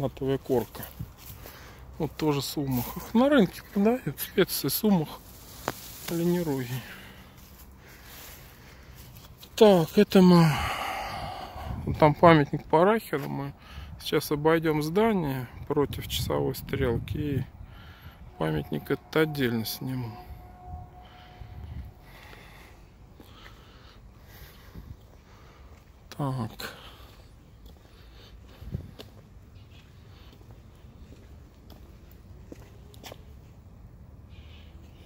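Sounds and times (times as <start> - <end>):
low rumble: 20.1 - 23.2.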